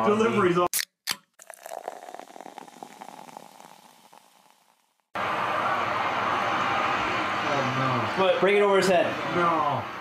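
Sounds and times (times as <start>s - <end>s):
soda fizzing: 1.4s - 5.1s.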